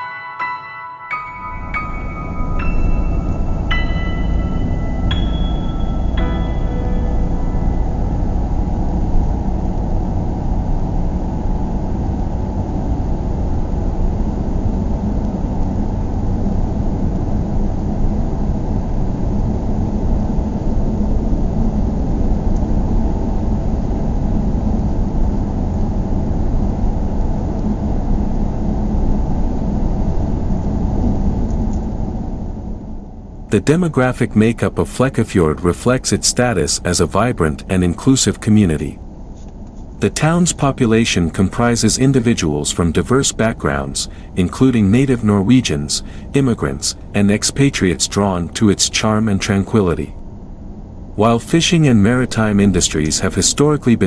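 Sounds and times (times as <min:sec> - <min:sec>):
road and engine rumble: 0:01.6 - 0:18.2, 0:33.4 - 0:54.0.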